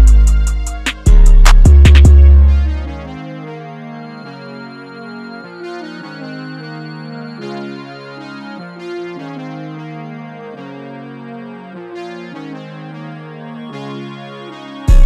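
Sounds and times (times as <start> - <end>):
synth keyboard chords: 0.0 - 15.0.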